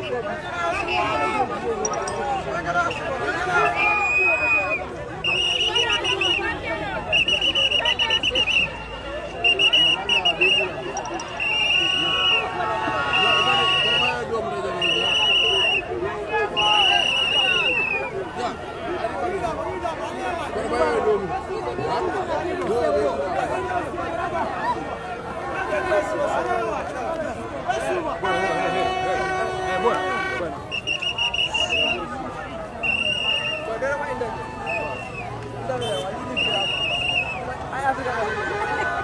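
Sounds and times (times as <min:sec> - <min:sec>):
crowd chatter and shouting: 0:00.0 - 0:39.0
whistle trilling blasts: 0:09.4 - 0:12.4, 0:30.7 - 0:32.1, 0:32.8 - 0:33.7, 0:34.6 - 0:37.4.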